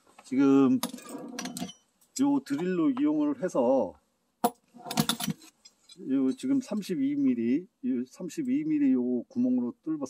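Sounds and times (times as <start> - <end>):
metal jangle: 0.8 - 1.8, 4.8 - 6.8
drill bits clinking and rattling: 4.4 - 6.0.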